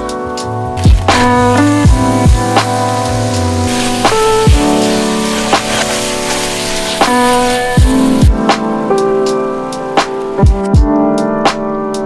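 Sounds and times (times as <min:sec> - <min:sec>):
drum beats: 0:00.0 - 0:11.6
instrumental background music: 0:00.0 - 0:12.0
meat and onions sizzling in pot: 0:00.8 - 0:08.5.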